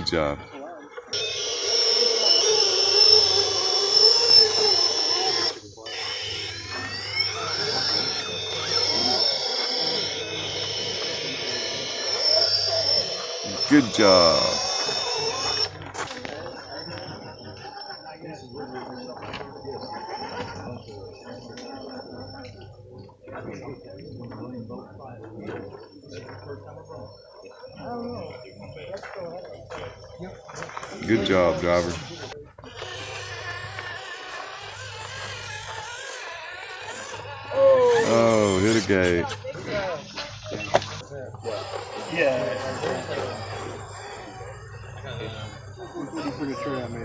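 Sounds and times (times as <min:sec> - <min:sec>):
indistinct background talk: 0:00.0 - 0:47.0
low background voices: 0:00.0 - 0:47.0.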